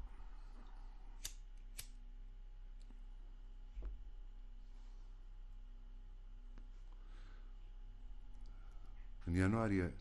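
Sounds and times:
low steady hum: 0:00.0 - 0:10.0
lighter clicks: 0:01.2 - 0:02.0.

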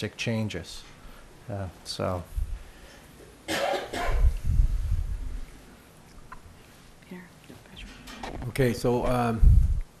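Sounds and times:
person coughing: 0:03.5 - 0:04.4.

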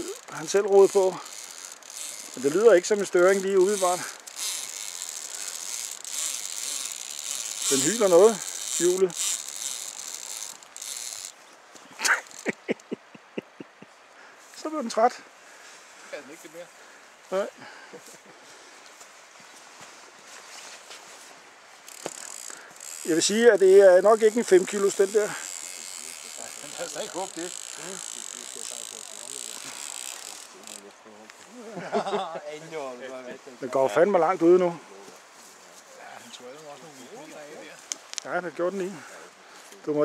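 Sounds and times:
fishing reel drag howling: 0:00.0 - 0:11.4, 0:12.0 - 0:12.5, 0:21.9 - 0:30.9.

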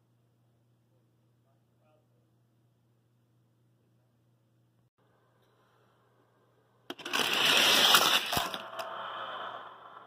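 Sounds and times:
toy cars rattling down plastic track: 0:06.9 - 0:10.0.

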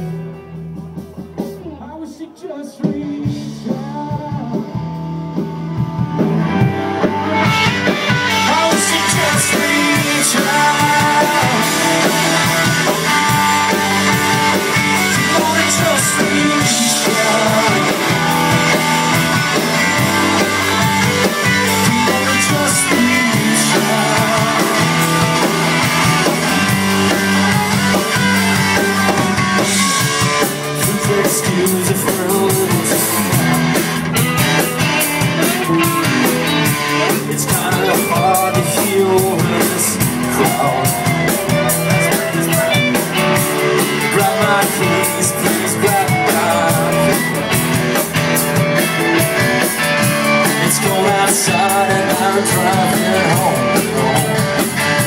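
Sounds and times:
live rock band: 0:00.0 - 0:55.0.

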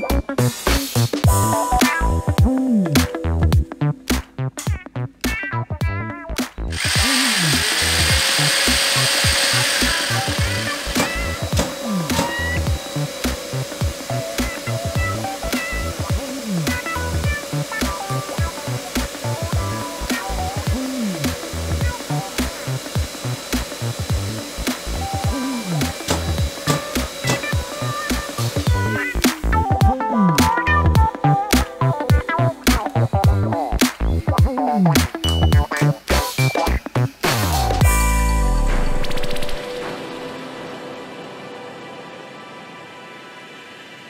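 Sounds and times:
background music with a beat: 0:00.0 - 0:40.5
dust extractor running: 0:06.6 - 0:29.9.

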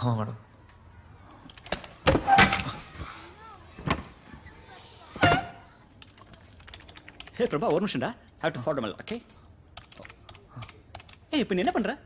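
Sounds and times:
keyboard typing clicks: 0:06.0 - 0:07.8, 0:09.8 - 0:11.2.

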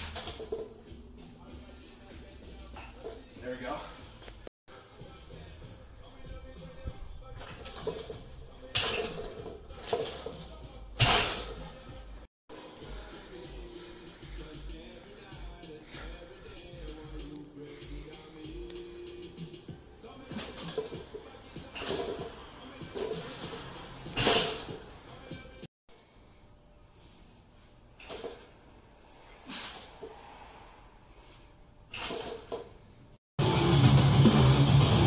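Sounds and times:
background music: 0:00.0 - 0:25.7, 0:33.4 - 0:35.0.

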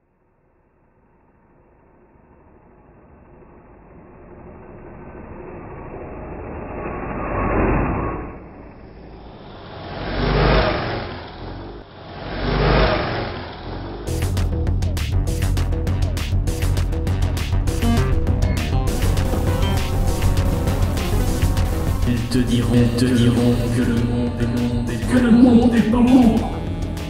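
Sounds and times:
music with sharp busy beat: 0:14.1 - 0:27.0
noise swell building: 0:17.7 - 0:27.0.

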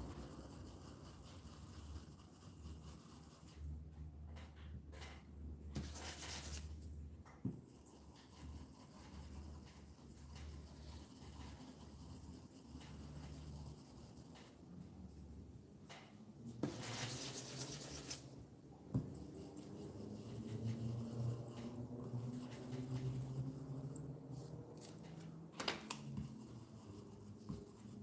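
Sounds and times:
stencil brush scrubbing on wood: 0:16.6 - 0:18.3, 0:19.1 - 0:25.0, 0:26.1 - 0:28.0.

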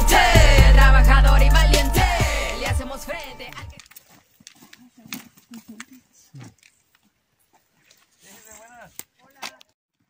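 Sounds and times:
footsteps on dirt path: 0:03.1 - 0:10.0.

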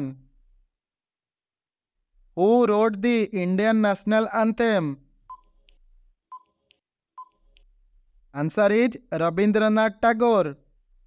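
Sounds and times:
faint electronic timer beeps: 0:05.3 - 0:07.8.

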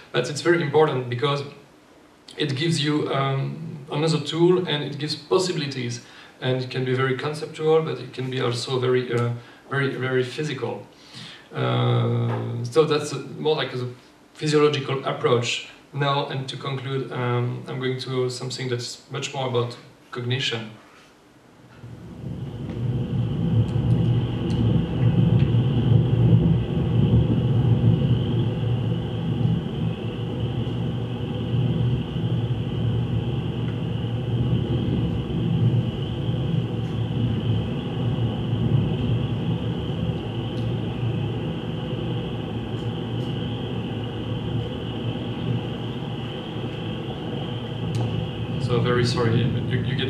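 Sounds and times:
constant high band of sound: 0:00.0 - 0:01.7, 0:02.3 - 0:20.7, 0:21.6 - 0:50.0
dense low rumble: 0:21.7 - 0:50.0.

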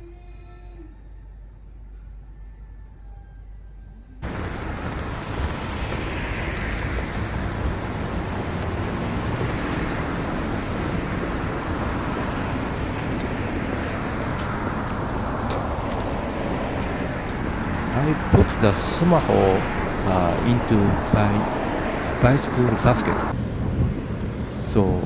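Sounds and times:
vehicles passing: 0:03.9 - 0:25.0
road traffic rushing: 0:04.2 - 0:25.0.

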